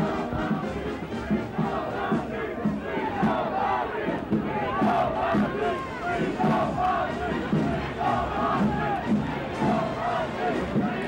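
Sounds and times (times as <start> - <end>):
large crowd shouting: 0.0 - 11.0.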